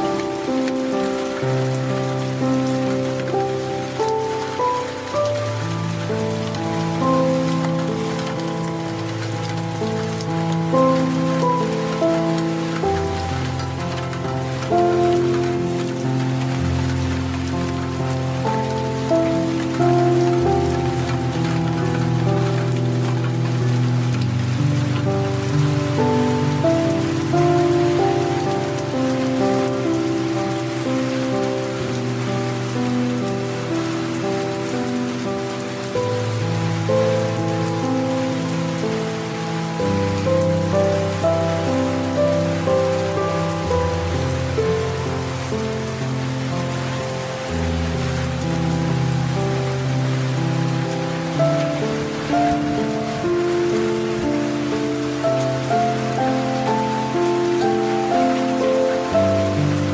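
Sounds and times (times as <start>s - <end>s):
slow calm instrumental music: 0.0s - 59.9s
steady rain: 0.0s - 59.9s.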